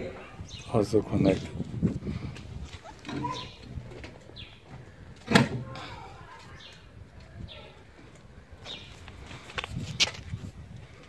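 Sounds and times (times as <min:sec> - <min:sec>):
birds calling: 0:00.0 - 0:09.5.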